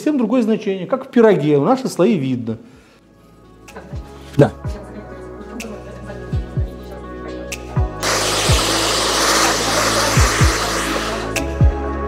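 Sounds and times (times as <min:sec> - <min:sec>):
hair dryer blowing: 0:08.0 - 0:11.5.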